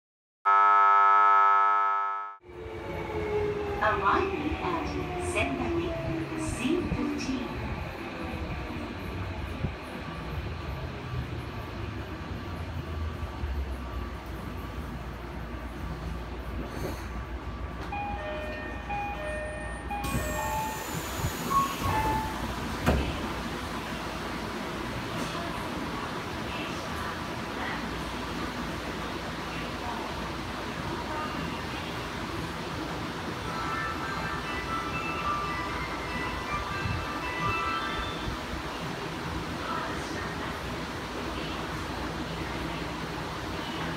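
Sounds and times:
loud held multi-pitch tone: 0:00.5 - 0:02.4
station announcement: 0:00.5 - 0:16.6, 0:17.2 - 0:43.9
subway train rumble: 0:02.4 - 0:43.9.

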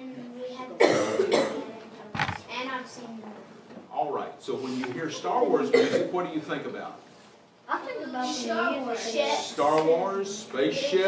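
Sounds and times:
person coughing: 0:00.8 - 0:01.6, 0:05.7 - 0:06.1.

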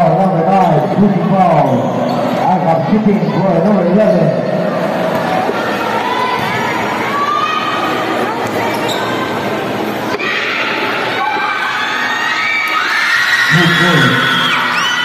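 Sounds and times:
crowd chatter and shouts: 0:00.0 - 0:15.0.

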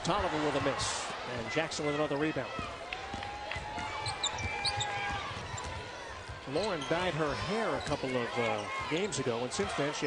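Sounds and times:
sneakers squeaking: 0:03.7 - 0:10.0.

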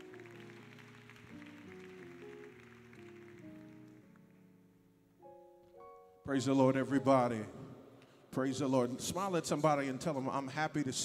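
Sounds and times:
soft church keyboard chords: 0:00.0 - 0:11.0.

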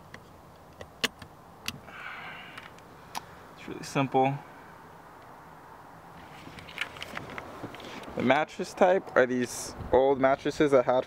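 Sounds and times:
soft rustle: 0:06.1 - 0:08.3.

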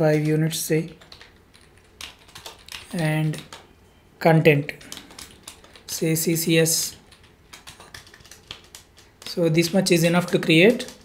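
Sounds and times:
computer keyboard keystrokes: 0:00.1 - 0:03.7, 0:04.8 - 0:06.0, 0:06.8 - 0:11.0.

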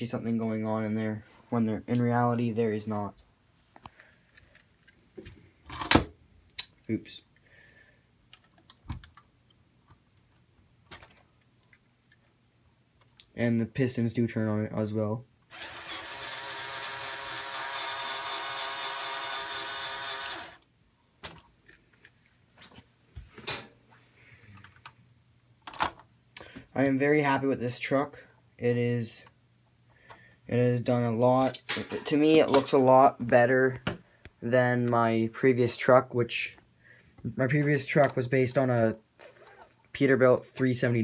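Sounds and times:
small electric motor whining: 0:15.5 - 0:20.6.

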